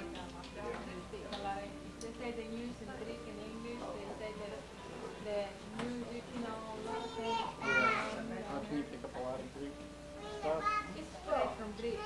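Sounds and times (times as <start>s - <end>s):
children talking and playing: 6.5s - 8.4s, 10.1s - 12.0s
high-pitched child's voice: 6.9s - 8.2s, 10.2s - 10.9s.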